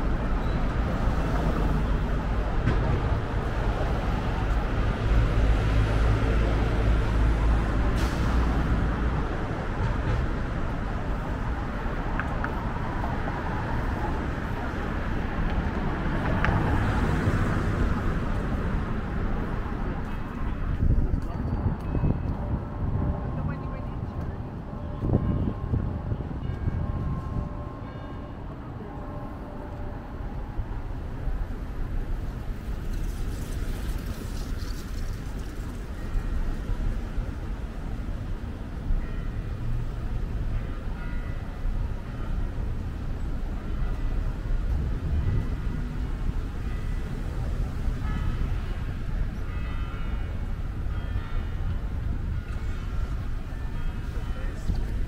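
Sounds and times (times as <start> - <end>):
traffic rumble: 0.0 - 55.0
passersby talking: 19.7 - 26.1, 53.0 - 55.0.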